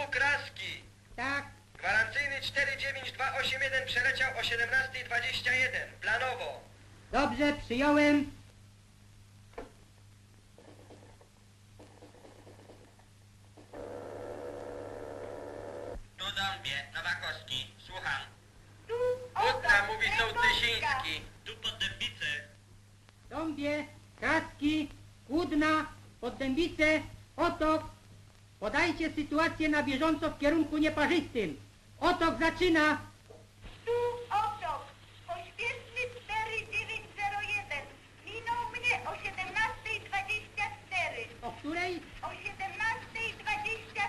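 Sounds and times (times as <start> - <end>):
low mains hum: 0.0 - 44.0
telephone line hiss and static: 0.0 - 44.0
man speaking over telephone line: 16.2 - 18.4, 19.4 - 22.5.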